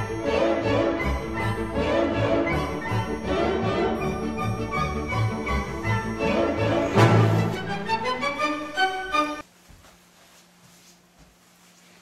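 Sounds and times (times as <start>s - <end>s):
background music held notes: 0.0s - 9.4s.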